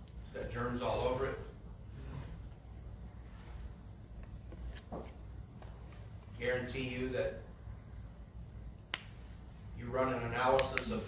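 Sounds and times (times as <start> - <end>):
sharp click: 10.5 - 11.0.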